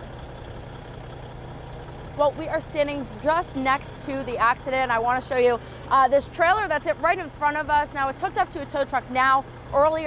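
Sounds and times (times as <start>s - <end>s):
faint road noise: 0.0s - 10.0s
vehicle engines idling: 0.0s - 10.0s.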